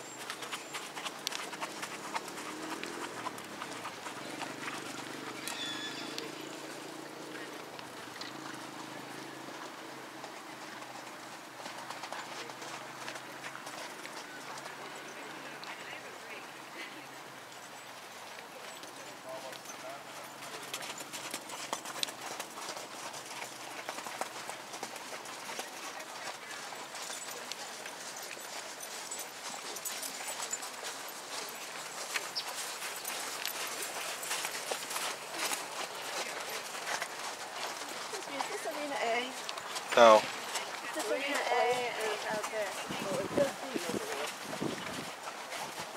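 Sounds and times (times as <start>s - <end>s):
horse hoofbeats on sand: 0.0s - 16.1s, 18.0s - 45.9s.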